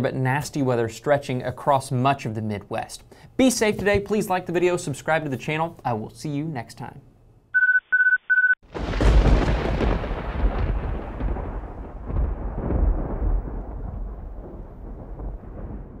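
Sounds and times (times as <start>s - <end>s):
short electronic beeps: 7.6s - 8.6s
thunder rumbling: 8.6s - 16.0s.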